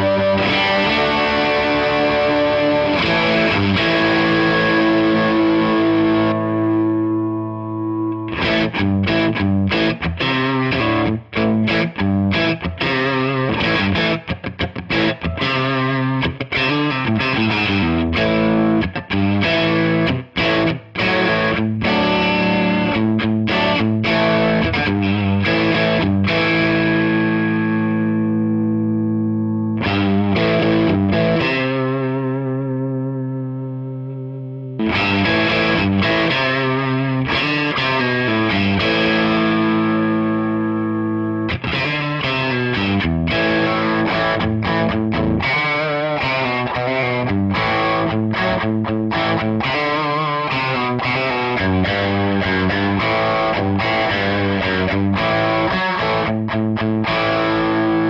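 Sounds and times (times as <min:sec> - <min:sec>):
overdriven electric guitar: 0:00.0 - 0:58.0.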